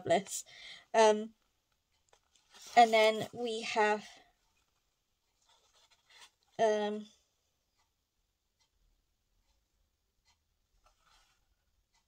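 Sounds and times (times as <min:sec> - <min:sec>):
paper pages rustling: 0:01.9 - 0:03.3, 0:04.4 - 0:06.6, 0:10.8 - 0:11.5.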